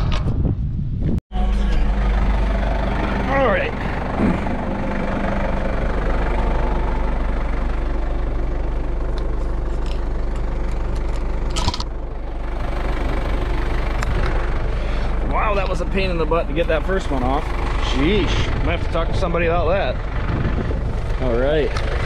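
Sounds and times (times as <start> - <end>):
tractor engine idling: 1.4 - 22.0.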